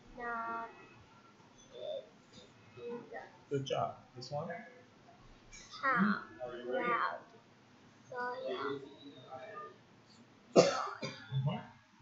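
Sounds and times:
girl coughing: 0:10.6 - 0:11.4
girl clearing her throat: 0:10.6 - 0:11.5.

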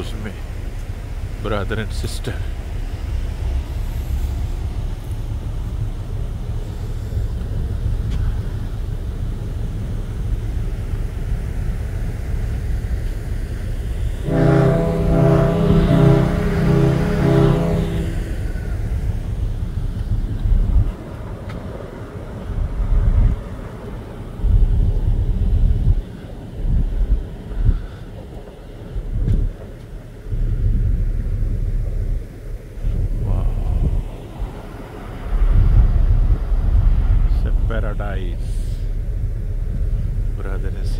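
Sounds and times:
wind buffeting microphone: 0:00.0 - 0:40.9
pulsing pitched tone: 0:14.0 - 0:19.6.

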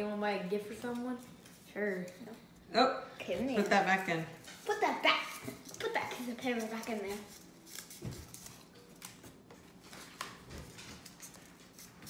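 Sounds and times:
paper crinkling and rustling: 0:04.4 - 0:12.0.

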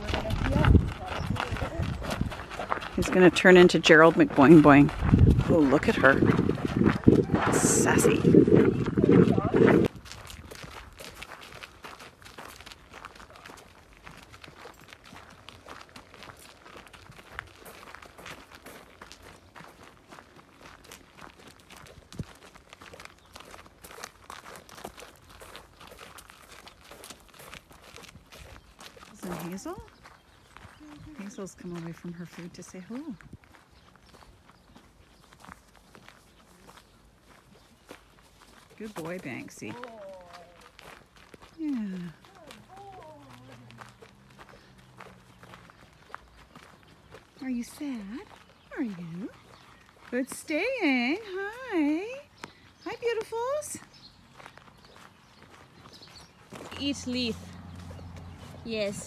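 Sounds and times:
footsteps on gravel: 0:00.0 - 0:59.0
horse hooves on gravel: 0:00.0 - 0:59.0.

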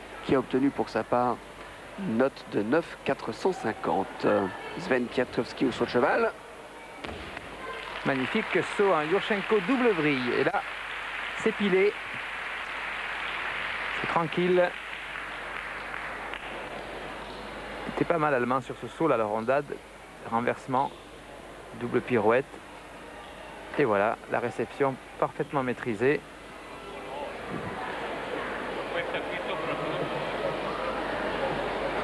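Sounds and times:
arena crowd applauding: 0:07.3 - 0:17.9, 0:27.2 - 0:32.0
crowd murmur: 0:15.3 - 0:18.2, 0:26.2 - 0:32.0.

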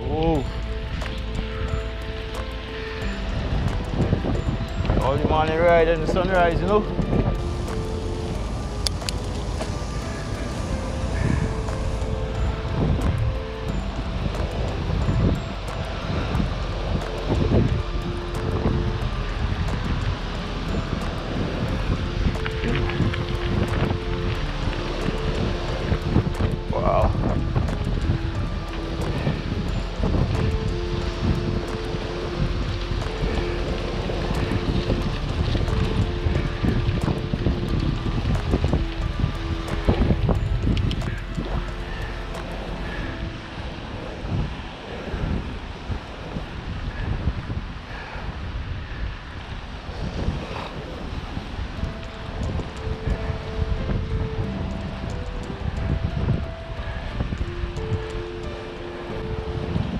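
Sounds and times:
music with held notes: 0:00.0 - 0:45.5, 0:51.0 - 0:59.9
wind rumbling on microphone: 0:00.0 - 0:59.9.

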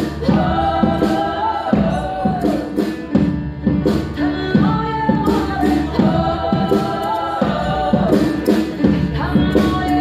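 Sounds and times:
voices singing together: 0:00.0 - 0:03.0, 0:04.2 - 0:10.0
drums: 0:00.0 - 0:10.0.

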